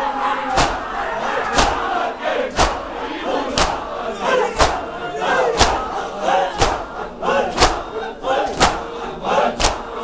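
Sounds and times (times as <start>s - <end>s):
many voices chanting: 0.0s - 10.0s
men striking chests in unison: 0.4s - 10.0s.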